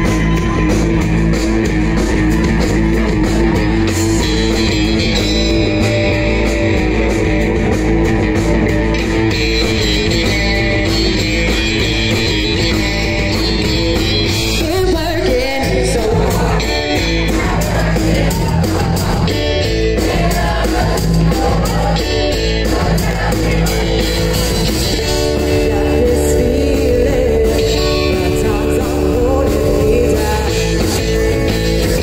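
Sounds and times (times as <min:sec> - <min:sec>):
bass guitar: 0:00.0 - 0:32.0
drum kit: 0:00.0 - 0:32.0
electric guitars: 0:00.0 - 0:32.0
person singing: 0:14.5 - 0:32.0.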